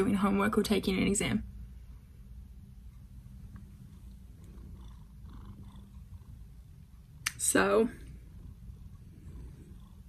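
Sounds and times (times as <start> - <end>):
cat purring: 1.8 - 10.0.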